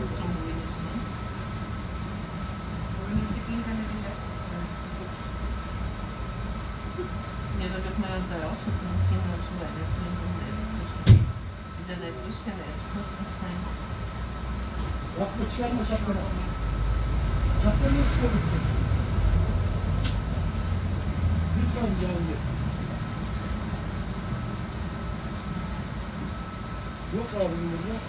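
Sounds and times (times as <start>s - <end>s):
bus diesel engine rumble: 0.0s - 27.6s
faint steady whine: 0.0s - 28.0s
sharp knock: 11.0s - 11.4s.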